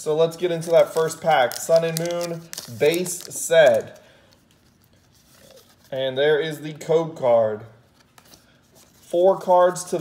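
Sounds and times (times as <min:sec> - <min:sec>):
trading cards handled: 0:00.6 - 0:06.0.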